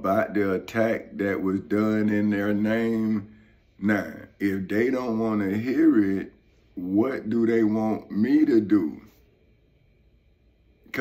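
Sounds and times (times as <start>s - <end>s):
man speaking: 0.0s - 9.2s.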